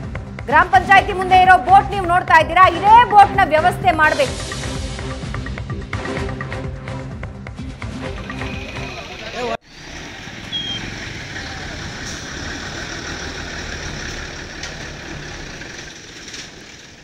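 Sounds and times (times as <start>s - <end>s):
news music: 0.3s - 9.6s.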